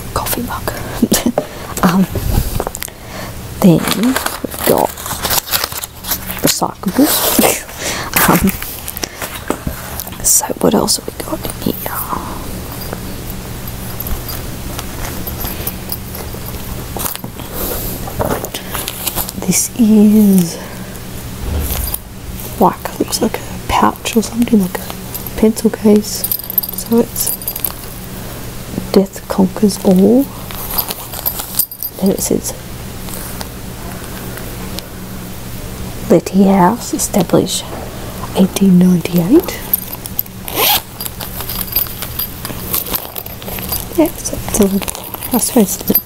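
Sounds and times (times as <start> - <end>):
low electrical hum: 0.0 - 46.0
packaging rustling and crinkling: 3.8 - 7.4, 40.5 - 46.0.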